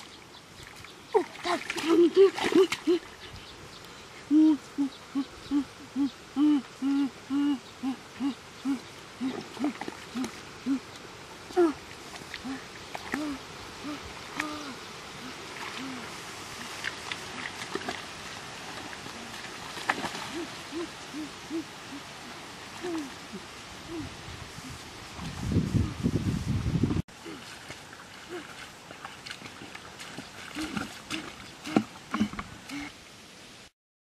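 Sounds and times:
man making hooting oh sounds: 4.3 - 10.9, 20.3 - 22.1.

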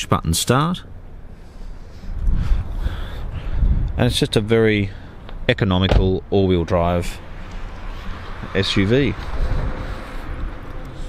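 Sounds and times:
wind buffeting microphone: 2.1 - 4.6, 7.6 - 11.0.

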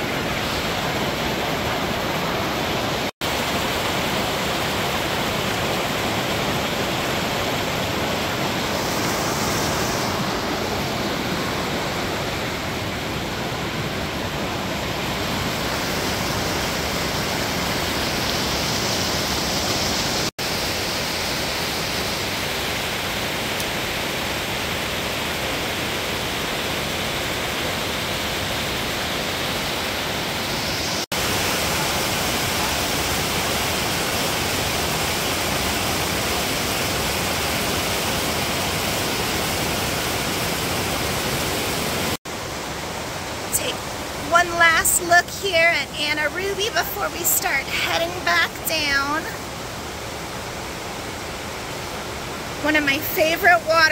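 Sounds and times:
creek rushing over cascades: 0.0 - 53.9.

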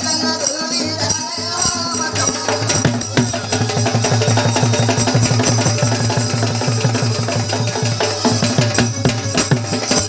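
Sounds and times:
barrel drum beat: 0.0 - 10.0
other percussion: 0.0 - 10.0.

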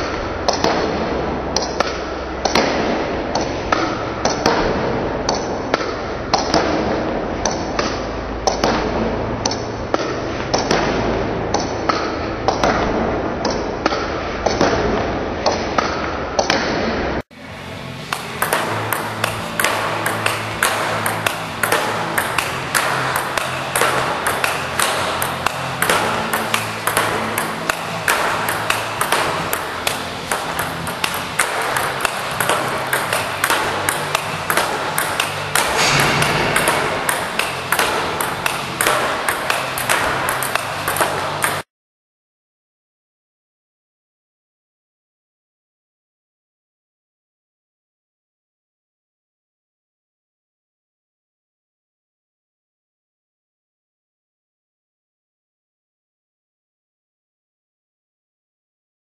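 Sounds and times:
table tennis ball clicking: 18.1 - 41.6.

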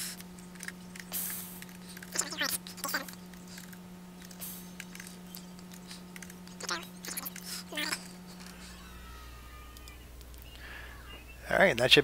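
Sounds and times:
faint low hum: 0.0 - 12.0
high rising cry: 8.4 - 11.3.

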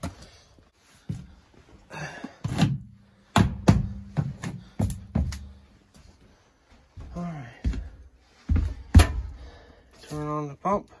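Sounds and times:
footsteps climbing inside: 0.0 - 10.3
camper door thuds and knocks: 3.4 - 4.2.

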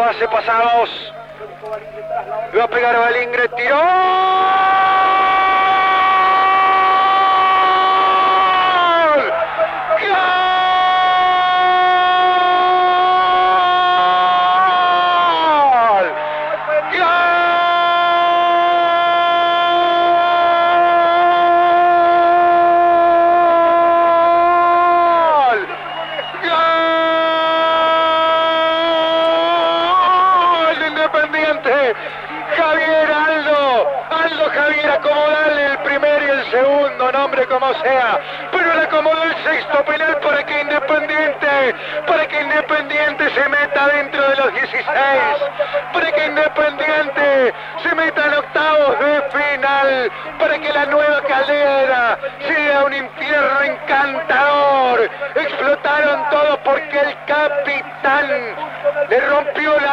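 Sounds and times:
commentator shouting goal: 2.0 - 59.9.

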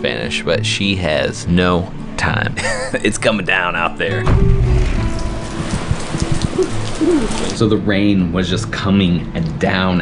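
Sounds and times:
heavy rain pouring: 4.3 - 7.7.

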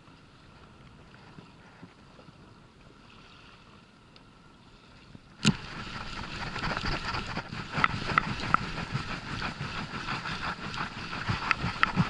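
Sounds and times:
water noise: 0.0 - 12.0
wind: 0.0 - 12.0.

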